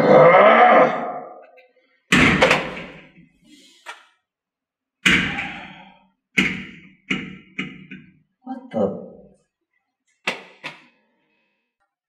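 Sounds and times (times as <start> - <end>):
loud impacts in tiled shower: 2.1 - 3.3.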